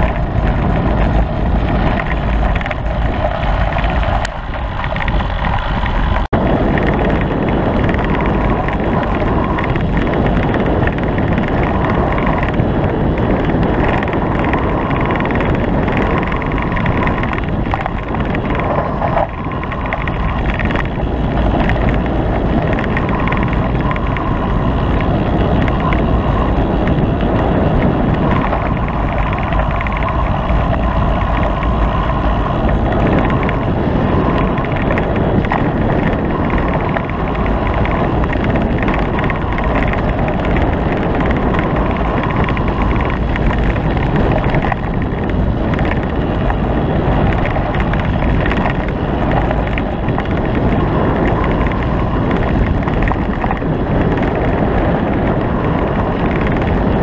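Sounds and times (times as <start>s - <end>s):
tyres rumbling on gravel: 0.0s - 57.0s
wind buffeting: 0.0s - 57.0s.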